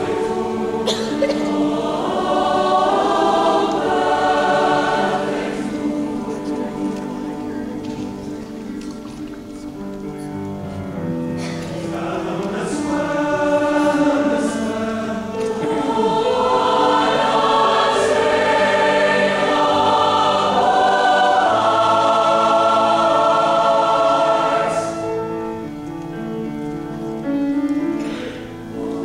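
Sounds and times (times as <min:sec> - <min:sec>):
choir singing in harmony: 0:00.0 - 0:08.6, 0:11.4 - 0:26.6, 0:27.7 - 0:29.0.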